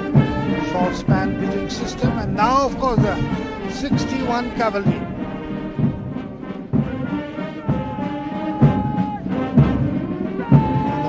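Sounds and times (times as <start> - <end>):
drum beats: 0.0 - 11.0
military brass band playing a march: 0.0 - 11.0.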